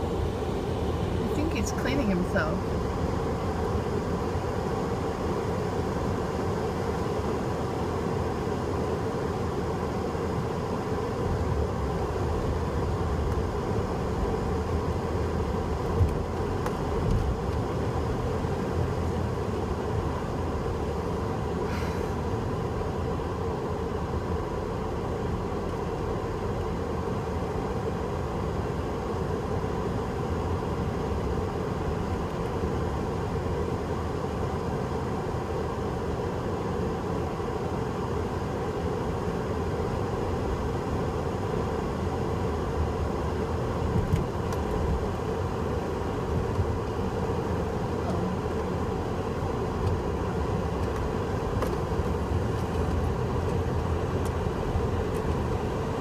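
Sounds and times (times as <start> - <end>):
car engine and road noise: 0.0 - 56.0.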